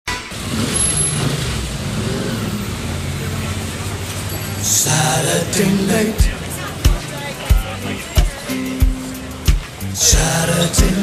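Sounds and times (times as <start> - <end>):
street traffic: 0.0 - 11.0
car engine running: 0.3 - 8.4
music: 5.0 - 11.0.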